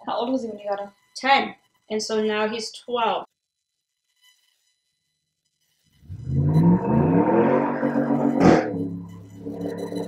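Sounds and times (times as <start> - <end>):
vehicle engine accelerating: 6.1 - 10.0.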